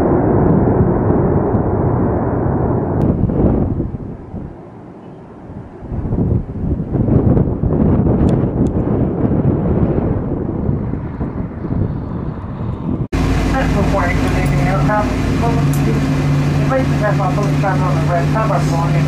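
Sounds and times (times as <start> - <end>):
jet airliner engine rumble: 0.0 - 19.0
low jet engine hum: 0.0 - 19.0
wind buffeting microphone: 0.0 - 19.0
people talking: 13.2 - 19.0.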